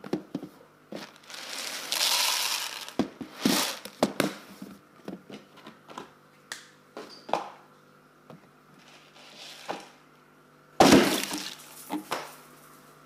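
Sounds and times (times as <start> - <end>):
dry cereal pouring: 1.0 - 4.0, 11.0 - 11.9.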